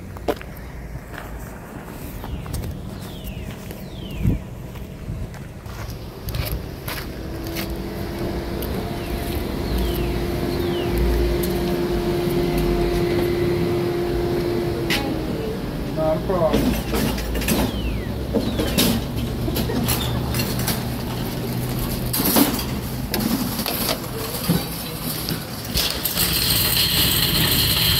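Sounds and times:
wind rumbling on microphone: 0:00.0 - 0:13.8
steady hum: 0:03.5 - 0:16.5.

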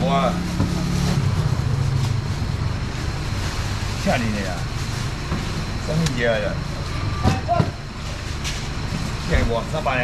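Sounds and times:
low mechanical hum: 0:00.0 - 0:10.0
market noise: 0:00.0 - 0:10.0.

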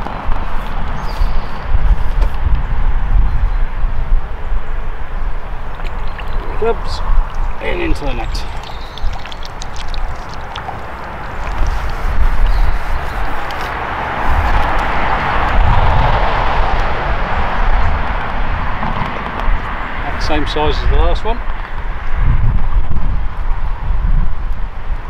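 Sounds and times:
wind on microphone: 0:00.0 - 0:25.0.

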